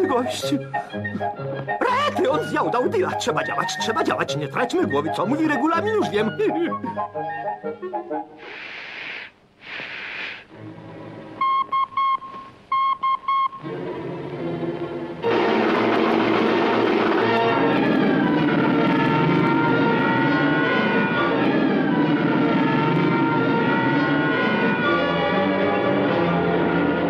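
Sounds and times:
loud orchestral music: 1.8 - 6.9, 15.2 - 27.0
alarm siren wailing: 13.3 - 26.7.

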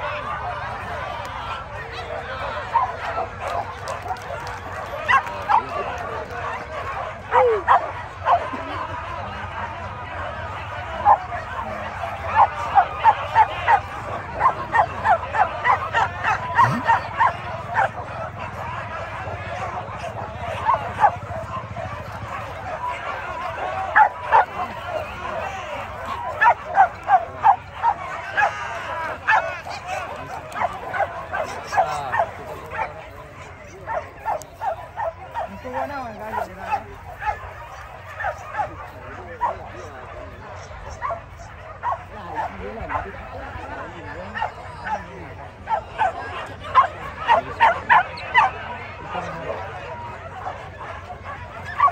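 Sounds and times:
dogs yelping and barking: 0.0 - 51.9.

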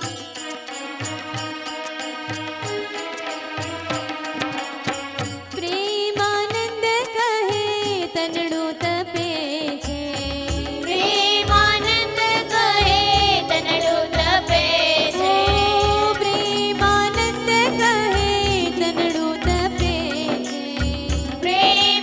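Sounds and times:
tabla rhythm: 0.0 - 22.0
woman singing: 5.5 - 22.0
electronic keyboard chords: 11.2 - 22.0.

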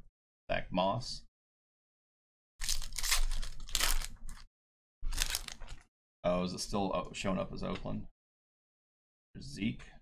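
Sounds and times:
foil wrapper tearing and crinkling: 2.6 - 4.5, 5.1 - 5.8.

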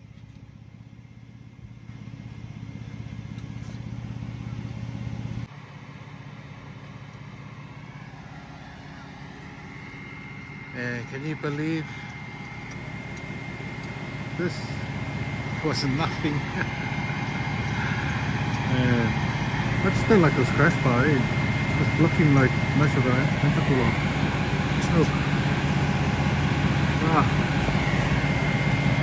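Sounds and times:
car engine idling: 0.0 - 29.0
faint high whine: 0.0 - 29.0.

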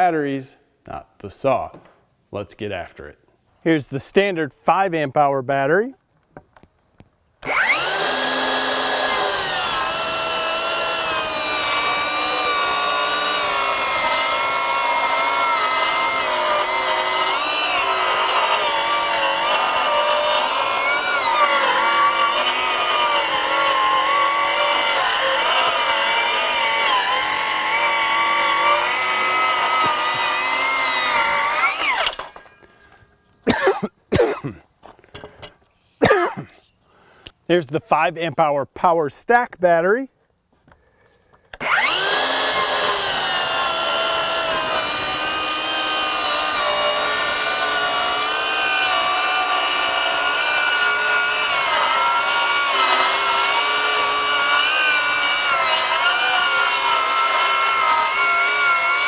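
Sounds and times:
circular saw cutting wood: 7.4 - 32.5, 41.6 - 59.0.

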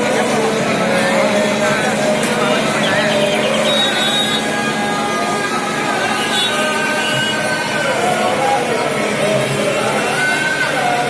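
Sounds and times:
mix of voices: 0.0 - 11.0.

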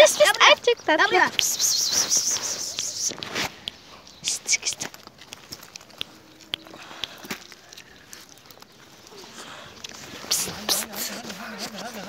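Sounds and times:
gravel crunching underfoot: 0.1 - 12.0
dog licking and nibbling: 0.2 - 12.0.

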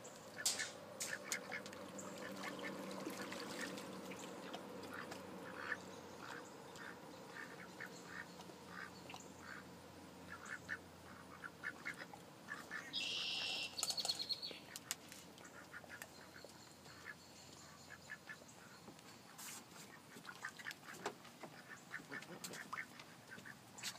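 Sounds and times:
ducks quacking: 0.3 - 13.8, 14.7 - 23.9
high-pitched duck call: 11.3 - 13.8.

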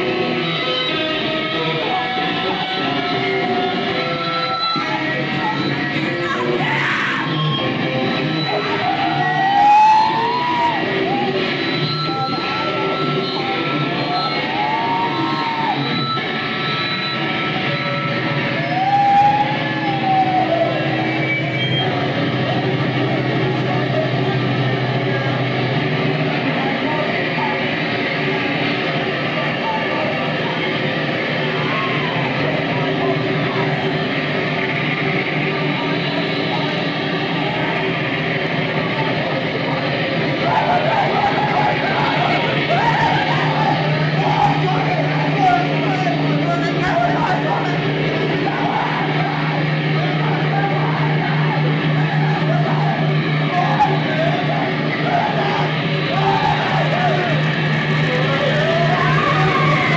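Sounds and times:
distorted electric guitar noise: 0.0 - 59.9
rising and falling wails: 40.3 - 59.9.

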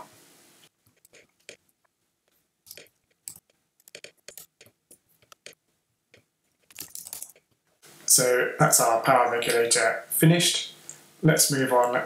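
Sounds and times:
mouse and keyboard clicks: 2.7 - 7.5.

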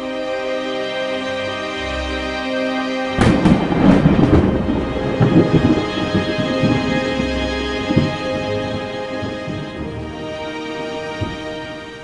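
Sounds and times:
theme music: 0.0 - 12.0
thunderclap: 3.2 - 12.0.

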